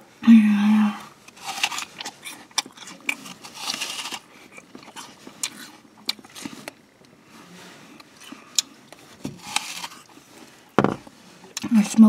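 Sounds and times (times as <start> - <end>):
apple crunching: 1.3 - 6.8, 8.0 - 10.2
wet chewing noise: 1.3 - 6.8.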